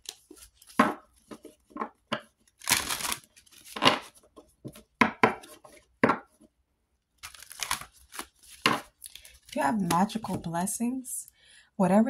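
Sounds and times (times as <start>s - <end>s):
cards snapping: 7.2s - 10.0s.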